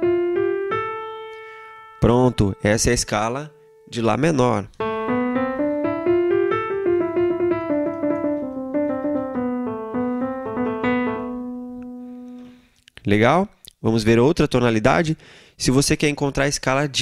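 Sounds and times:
digital piano run of notes: 0:00.0 - 0:12.6.

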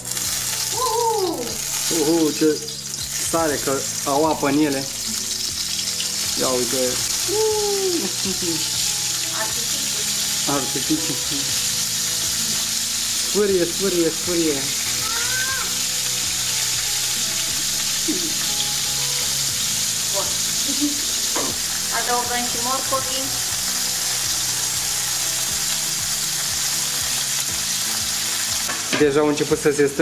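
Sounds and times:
octopus sizzling in oil: 0:00.0 - 0:30.0.

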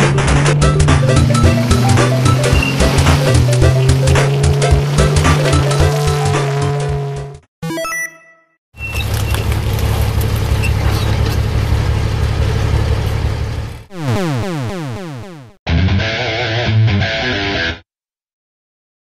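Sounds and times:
tank engine rumble: 0:00.0 - 0:07.0, 0:08.8 - 0:13.9
guitar music: 0:00.3 - 0:06.8, 0:13.9 - 0:17.8.

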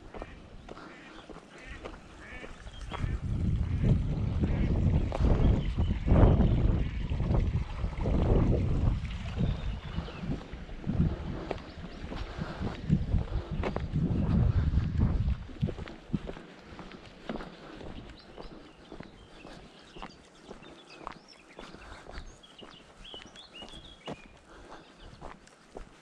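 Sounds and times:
wind rumbling on microphone: 0:00.0 - 0:25.4
birds calling: 0:00.0 - 0:26.0.

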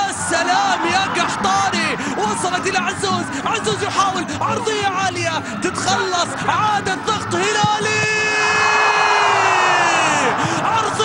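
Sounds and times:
stadium crowd noise: 0:00.0 - 0:11.0.

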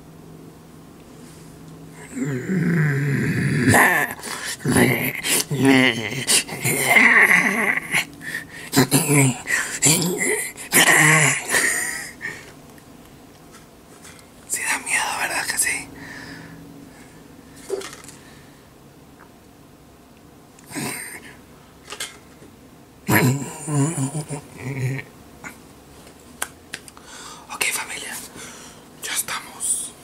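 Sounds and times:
man growling and snarling: 0:02.0 - 0:12.4, 0:20.6 - 0:21.4, 0:23.1 - 0:25.6
man whispering: 0:03.7 - 0:07.1, 0:07.7 - 0:12.2, 0:14.5 - 0:16.0, 0:20.7 - 0:21.5, 0:23.1 - 0:25.6, 0:27.4 - 0:28.4, 0:29.0 - 0:30.0.

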